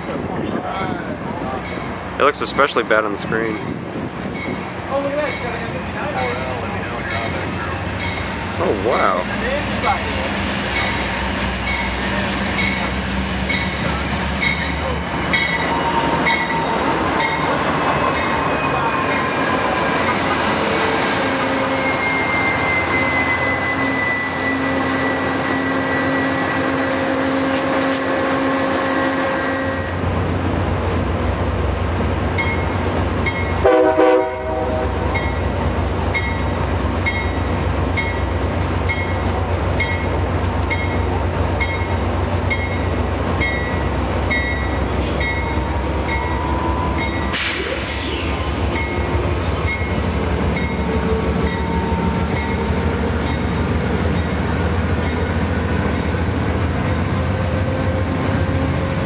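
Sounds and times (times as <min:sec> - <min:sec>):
train rumbling past: 0:00.0 - 0:59.0
long metallic squeal: 0:20.8 - 0:27.4
train horn blast: 0:21.2 - 0:30.0, 0:33.6 - 0:35.1.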